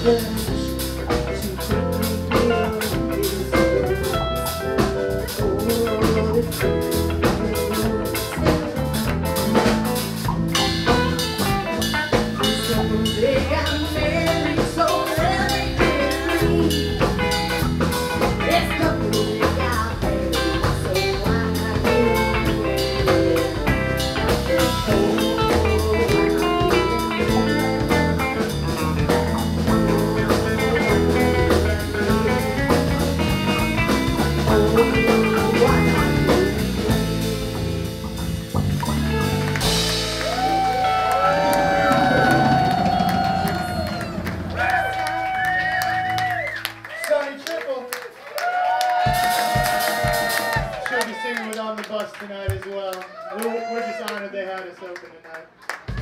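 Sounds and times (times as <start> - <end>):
rock band playing: 0.0 - 47.6, 48.5 - 51.0.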